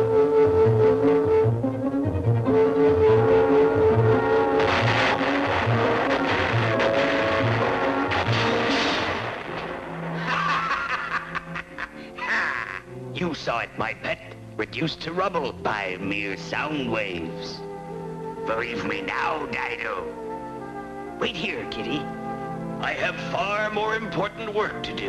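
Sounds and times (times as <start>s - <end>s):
pulsing low musical figure: 0.0s - 12.1s
dense crashing rumble: 4.0s - 11.6s.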